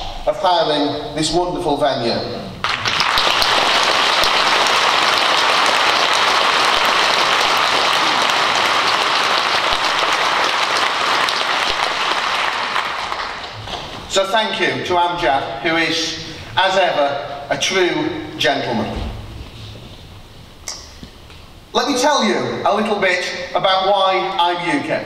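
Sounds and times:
large audience applauding: 2.6s - 14.1s.

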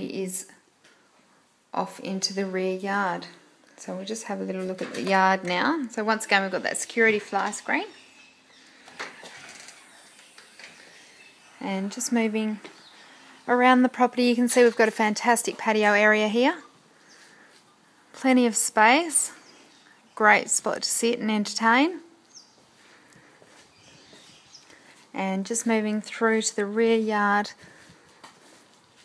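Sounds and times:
faint outdoor background noise: 0.0s - 29.0s
low background noise: 0.0s - 29.0s.

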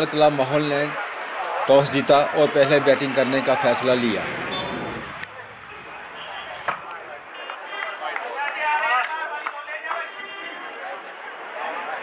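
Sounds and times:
faint voices: 1.0s - 8.1s
cricket bat striking ball: 5.2s - 7.2s.

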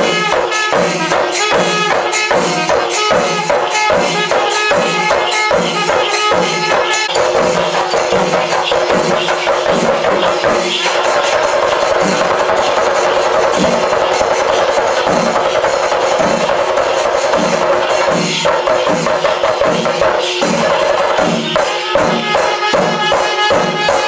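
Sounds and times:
drums beating steady rhythm: 0.0s - 24.0s
jingling metal: 4.0s - 16.7s.

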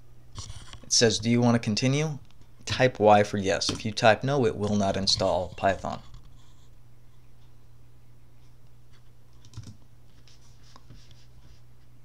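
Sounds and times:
low steady hum: 0.0s - 12.0s
computer keyboard clicks: 9.4s - 9.8s.

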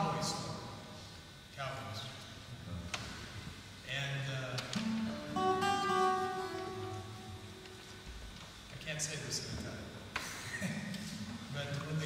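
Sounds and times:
fingerstyle acoustic guitar: 4.6s - 8.0s.

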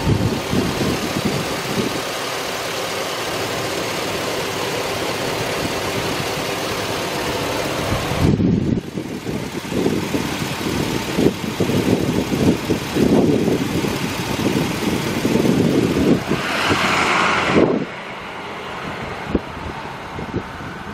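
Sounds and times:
engine rumbling: 0.0s - 20.9s.

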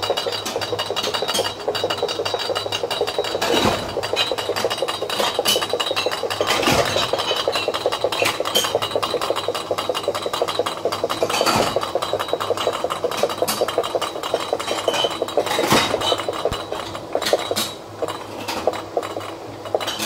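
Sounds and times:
glass bottles rattling: 0.2s - 20.0s.

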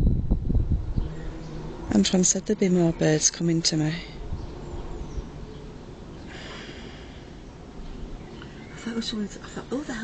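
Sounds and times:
wind buffeting microphone: 0.0s - 6.2s.

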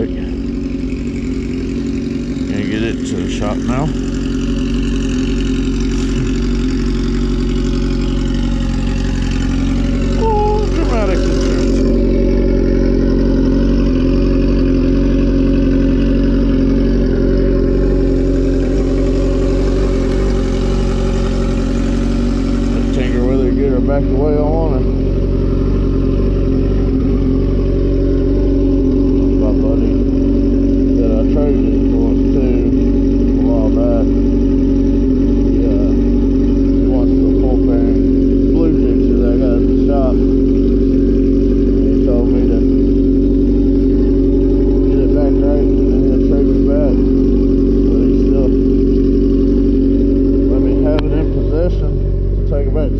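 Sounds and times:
motorcycle engine idling: 0.0s - 52.9s.

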